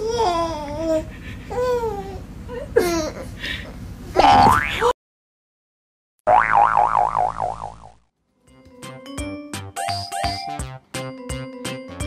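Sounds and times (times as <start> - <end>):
cartoon boing spring sound: 4.2 - 4.9, 6.3 - 8.0.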